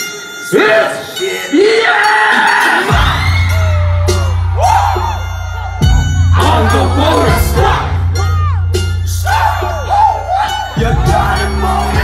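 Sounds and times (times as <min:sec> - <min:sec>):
hip-hop beat over pa: 0:00.0 - 0:12.0
people whooping and yelling: 0:01.6 - 0:12.0
deep bass sweep: 0:03.0 - 0:10.0.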